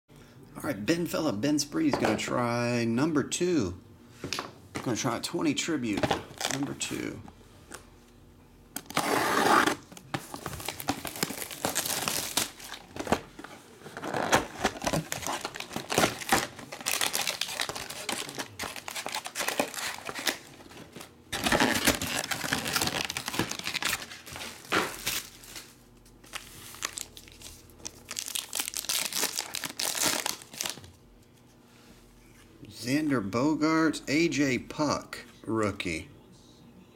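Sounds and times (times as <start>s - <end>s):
cardboard and card packs rustling: 5.8s - 7.2s, 8.8s - 31.0s
plastic wrap crinkling and tearing: 6.2s - 6.7s, 8.8s - 13.2s, 13.8s - 31.0s.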